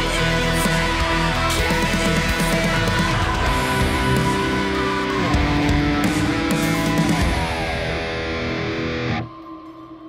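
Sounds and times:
backing track: 0:00.0 - 0:09.3
distorted electric guitar: 0:00.0 - 0:09.4.

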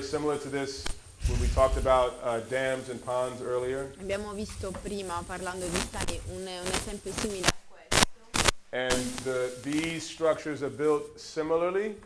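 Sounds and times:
person talking: 0:04.0 - 0:11.6.

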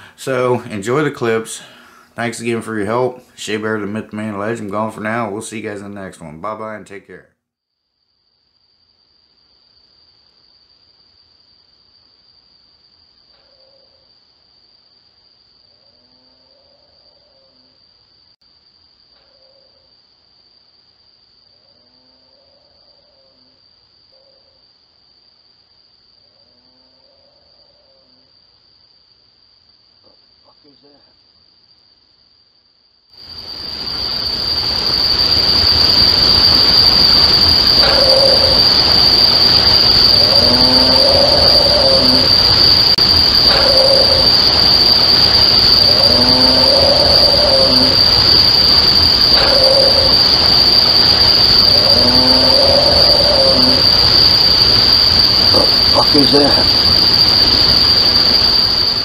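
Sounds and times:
crickets trilling: 0:00.0 - 0:07.2, 0:07.8 - 0:59.0
microphone hiss: 0:00.0 - 0:07.4, 0:33.1 - 0:59.0
rising and falling animal call: 0:33.5 - 0:59.0.

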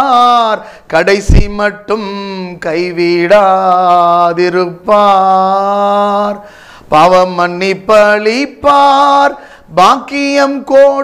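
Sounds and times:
man singing unaccompanied: 0:00.0 - 0:11.0.

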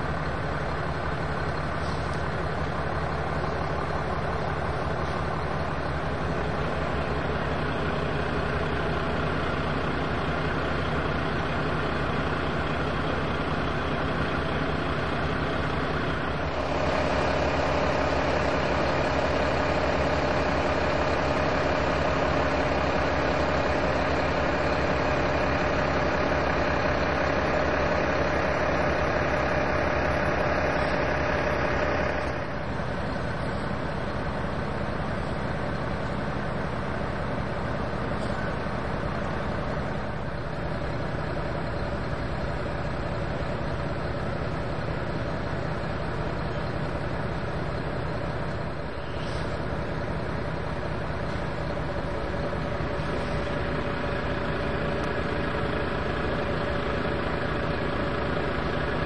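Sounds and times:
engines idling: 0:00.0 - 0:59.0
loud steady hum with drone: 0:00.0 - 0:59.0.

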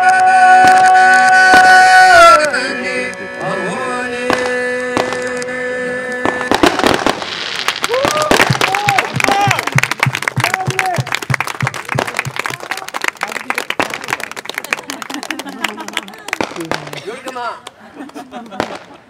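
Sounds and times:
violin long note: 0:00.0 - 0:06.5
audience clapping: 0:07.6 - 0:18.7
cheering shouts: 0:07.9 - 0:09.8.

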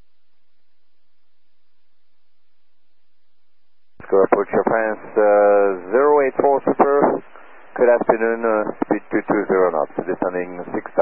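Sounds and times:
faint radio hiss: 0:00.0 - 0:11.0
pilot talking over radio: 0:04.0 - 0:11.0.

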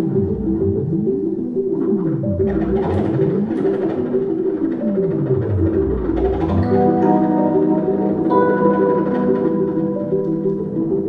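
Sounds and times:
electronic music: 0:00.0 - 0:11.0.

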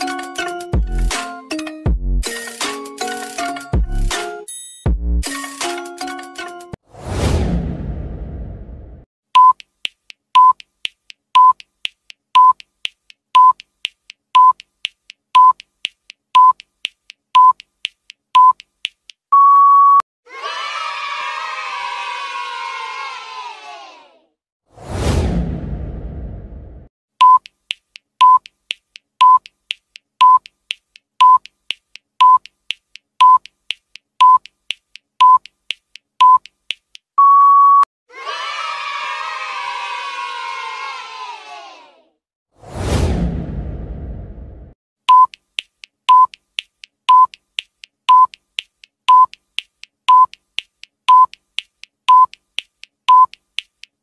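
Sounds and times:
low whoosh: 0:06.9 - 0:09.0, 0:24.8 - 0:26.9, 0:42.6 - 0:44.8
electronic countdown beeps: 0:09.4 - 0:09.7, 0:10.4 - 0:10.6, 0:11.4 - 0:11.7, 0:12.4 - 0:12.7, 0:13.4 - 0:13.6, 0:14.4 - 0:14.7, 0:15.4 - 0:15.6, 0:16.4 - 0:16.6, 0:17.4 - 0:17.6, 0:18.4 - 0:18.6, 0:19.3 - 0:20.0, 0:27.2 - 0:27.5, 0:28.2 - 0:28.5, 0:29.2 - 0:29.5, 0:30.2 - 0:30.5, 0:31.2 - 0:31.5, 0:32.2 - 0:32.5, 0:33.2 - 0:33.5, 0:34.2 - 0:34.5, 0:35.2 - 0:35.5, 0:36.2 - 0:36.5, 0:37.2 - 0:37.9, 0:45.1 - 0:45.4, 0:46.1 - 0:46.4, 0:47.1 - 0:47.4, 0:48.1 - 0:48.4, 0:49.1 - 0:49.4, 0:50.1 - 0:50.4, 0:51.1 - 0:51.4, 0:52.1 - 0:52.4, 0:53.1 - 0:53.4
long beep: 0:19.4 - 0:20.0, 0:37.2 - 0:37.8
children cheering and shouting: 0:20.3 - 0:24.3, 0:38.1 - 0:42.2.

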